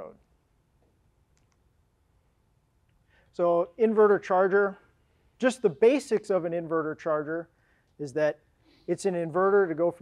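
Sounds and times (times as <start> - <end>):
faint sharp clicks: 1.3 - 1.7.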